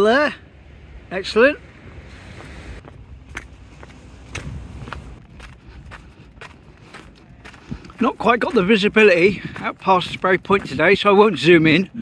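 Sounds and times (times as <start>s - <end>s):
steady low rumble: 0.4s - 11.0s.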